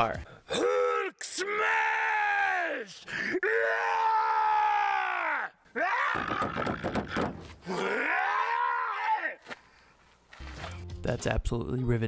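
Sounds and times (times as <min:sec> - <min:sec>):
man groaning yells: 0:07.7 - 0:09.4.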